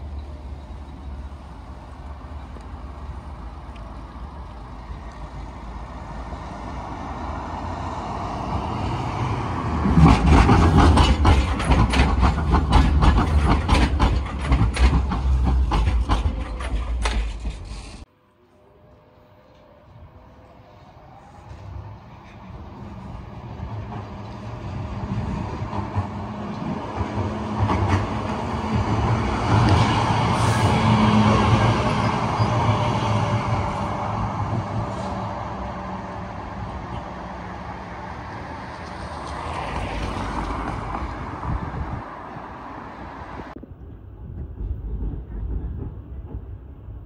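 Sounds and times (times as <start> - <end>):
tram wheels rumbling on rail: 0.0 - 18.1, 18.8 - 47.0.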